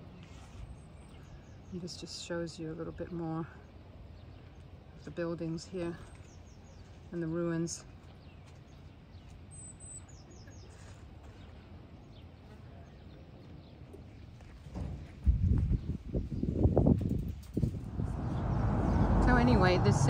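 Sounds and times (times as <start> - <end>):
loud low rumble with knocks: 17.6 - 20.0.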